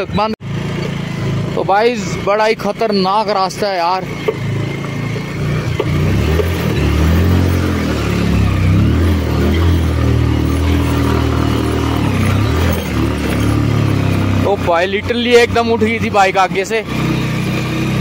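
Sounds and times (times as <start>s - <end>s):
motorcycle engine revving: 0.0s - 18.0s.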